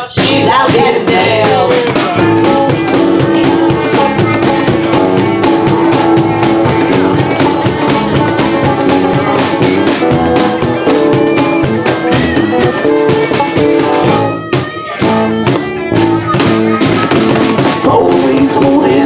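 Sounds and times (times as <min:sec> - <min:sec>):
harmonica melody: 0:00.0 - 0:18.4
cajon beat: 0:00.0 - 0:19.0
electric bass: 0:00.0 - 0:19.0
strummed acoustic guitar: 0:00.0 - 0:19.0.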